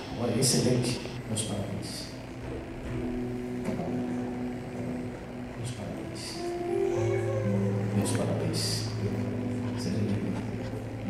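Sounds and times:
soft keyboard chords: 0.0 - 11.0.

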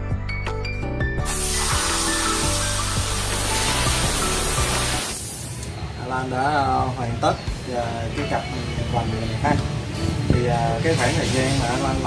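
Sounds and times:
background music: 0.0 - 12.0
compressed air blow gun hissing: 1.2 - 5.7.

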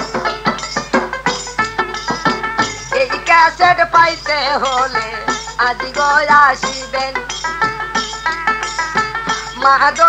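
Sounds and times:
drum strokes: 0.0 - 10.0
held steady tones: 0.0 - 10.0.

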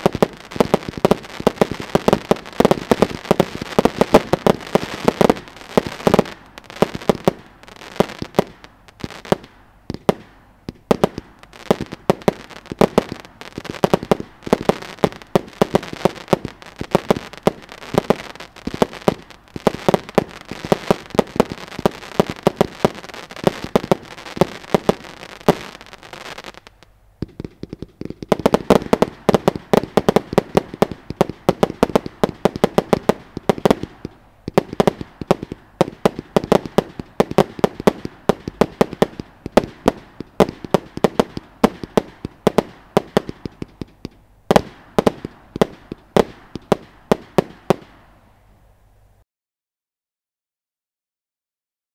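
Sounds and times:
firework cake firing shots: 0.0 - 8.6, 27.2 - 48.0.

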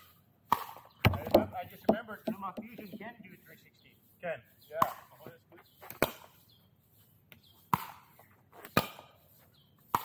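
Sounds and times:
paddle striking pickleball: 0.5 - 3.0.

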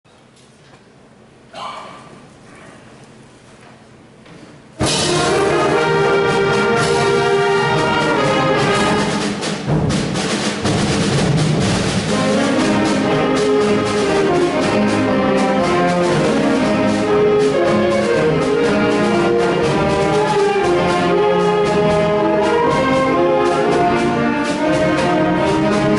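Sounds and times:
symphonic band playing a march: 4.8 - 25.9.

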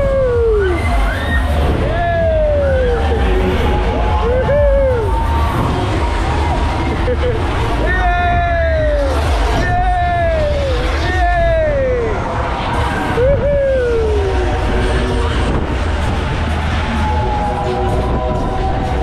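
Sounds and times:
low rumble: 0.0 - 19.0
ride riders whooping: 0.0 - 19.0.

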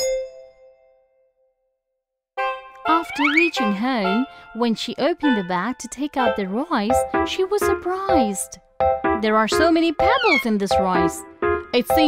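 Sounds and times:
bell-like ding: 0.0 - 1.1.

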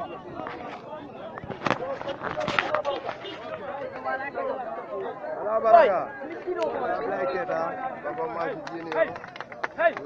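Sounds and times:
overlapping voices chattering: 0.0 - 10.0.

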